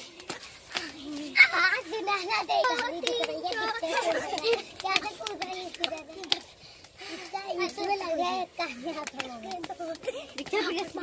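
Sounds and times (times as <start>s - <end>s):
children talking and calling out: 0.0s - 11.0s
rope ticking on concrete: 0.0s - 11.0s.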